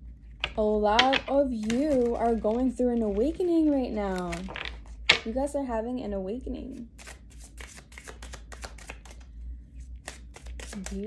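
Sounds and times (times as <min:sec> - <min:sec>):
cards being shuffled: 0:00.3 - 0:05.3, 0:06.7 - 0:11.0.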